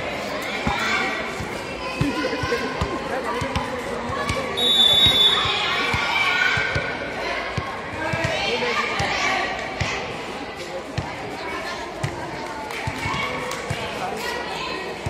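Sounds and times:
spectators chatting: 0.0 - 15.0.

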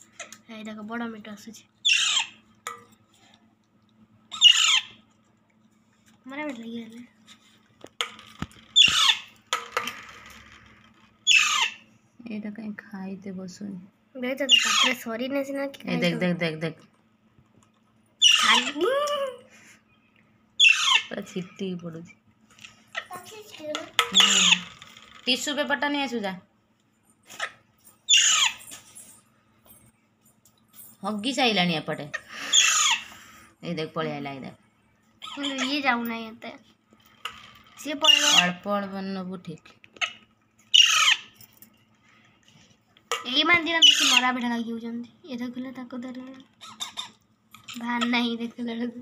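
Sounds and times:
parakeet chicks squawking: 1.8 - 2.4, 4.3 - 5.0, 8.6 - 9.4, 11.2 - 11.9, 14.4 - 15.1, 18.2 - 18.8, 20.6 - 21.2, 24.0 - 24.8, 27.3 - 28.7, 32.2 - 33.4, 35.2 - 36.0, 37.8 - 38.7, 40.0 - 41.4, 43.6 - 44.4, 46.6 - 48.1.

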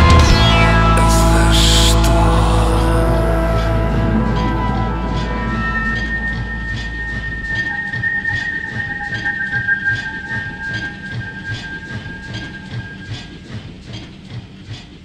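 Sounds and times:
held high tones: 0.0 - 13.5
low pulse: 0.0 - 14.5
train wheels clattering: 4.4 - 15.0.

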